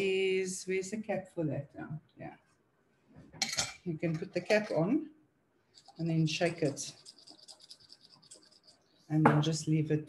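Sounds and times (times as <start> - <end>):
charms rattling in shaken jar: 5.8 - 8.7.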